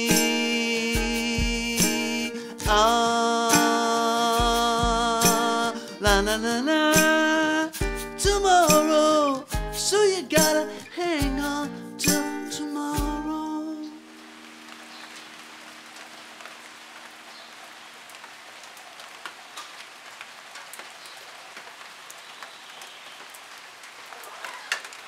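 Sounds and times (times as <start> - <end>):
steady rain falling: 0.0 - 10.2, 12.6 - 25.0.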